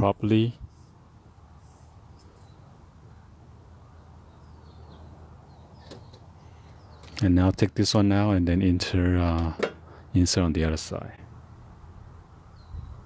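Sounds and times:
faint bird chirps: 0:02.1 - 0:07.2.

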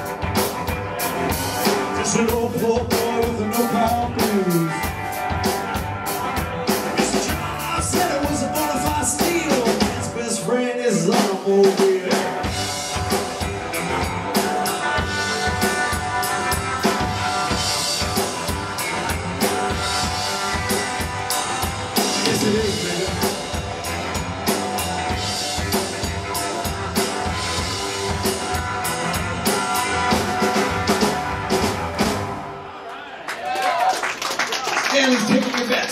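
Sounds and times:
upright double bass: 0:00.0 - 0:10.4, 0:12.3 - 0:32.4
drum kit: 0:00.0 - 0:32.7.

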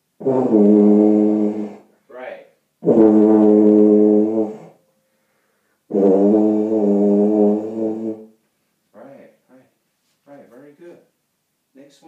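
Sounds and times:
tuba low held notes: 0:00.2 - 0:01.9, 0:02.8 - 0:04.8, 0:05.9 - 0:08.4.

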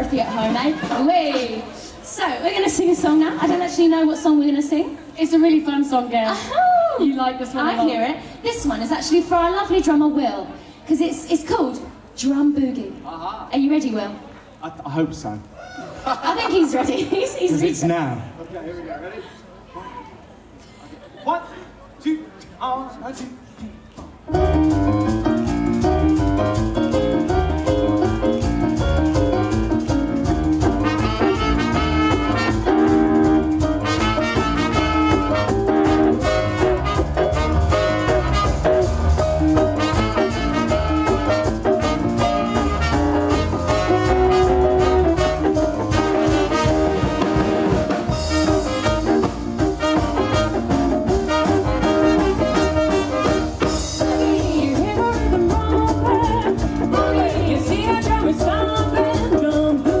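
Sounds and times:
drum kit: 0:00.0 - 0:01.6, 0:24.0 - 1:00.0
swing band playing: 0:00.0 - 0:06.2, 0:07.1 - 0:18.9, 0:22.6 - 1:00.0
double bass: 0:24.1 - 1:00.0
trumpet: 0:30.4 - 0:59.6.

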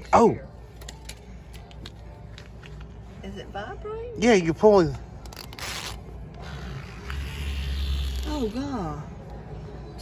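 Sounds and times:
vibrating cat toy buzzing: 0:06.8 - 0:08.5.

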